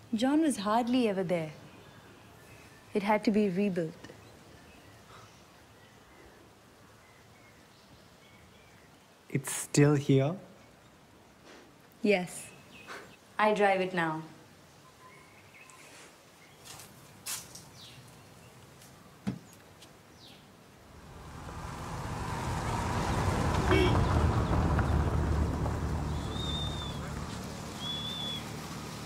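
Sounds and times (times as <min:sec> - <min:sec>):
car engine driving by: 0:20.9 - 0:29.0
bird chirps: 0:26.1 - 0:28.6.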